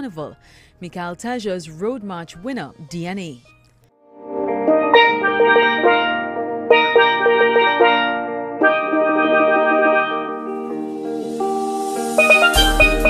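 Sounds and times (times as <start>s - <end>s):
steelpan melody: 4.2s - 13.0s.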